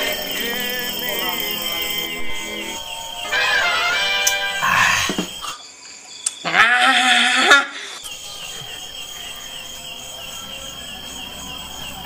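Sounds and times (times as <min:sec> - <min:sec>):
insect chirping: 0:00.0 - 0:12.0
bleating animal call: 0:06.4 - 0:07.7.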